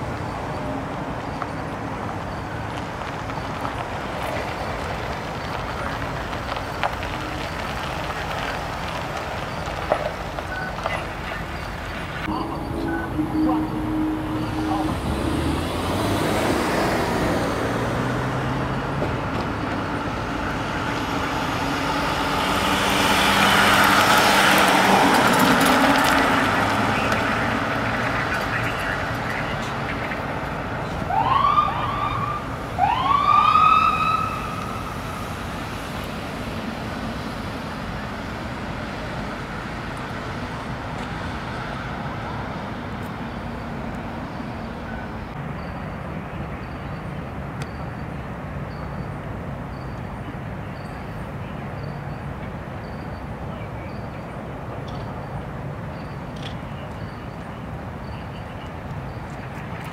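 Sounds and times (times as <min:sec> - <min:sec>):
fire engine driving past: 0:00.0 - 0:59.9
siren whoops: 0:12.3 - 0:16.6, 0:31.1 - 0:34.8.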